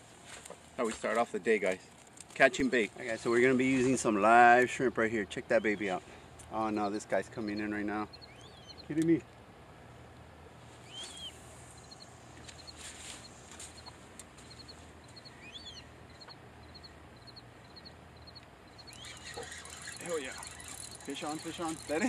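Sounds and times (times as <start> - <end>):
small birds chirping: 5.2 - 9.2, 10.8 - 22.0
whistled bird calls: 7.4 - 8.9, 10.8 - 12.1, 15.4 - 21.9
fishing reel spinning: 19.0 - 22.0.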